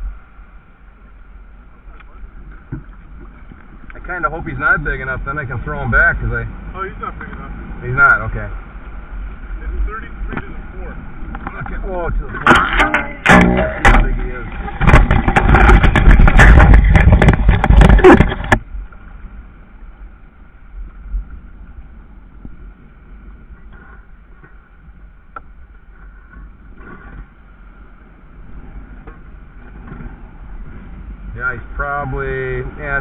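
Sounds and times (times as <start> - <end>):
rustling and clattering: 11.3 - 18.7.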